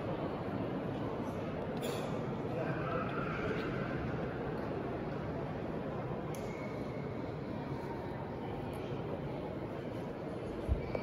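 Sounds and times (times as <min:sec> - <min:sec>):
murmur of many voices: 0:00.0 - 0:11.0.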